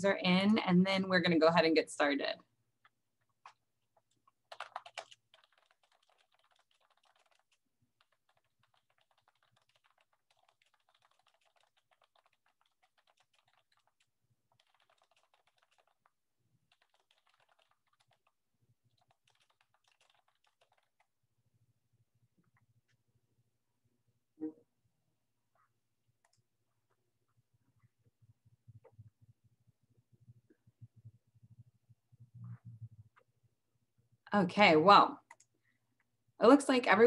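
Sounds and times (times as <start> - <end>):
keyboard typing: 3.4 - 21.1, 35.2 - 35.5.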